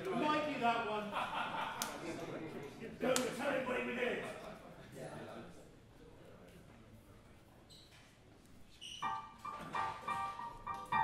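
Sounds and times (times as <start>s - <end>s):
electric keyboard melody: 9.0s - 11.0s.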